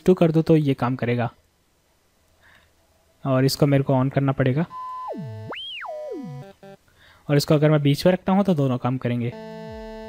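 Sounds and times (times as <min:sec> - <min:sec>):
short synth blips: 0:04.7 - 0:06.8, 0:09.3 - 0:10.0
synthesizer filter sweep: 0:04.7 - 0:06.8, 0:09.3 - 0:10.0.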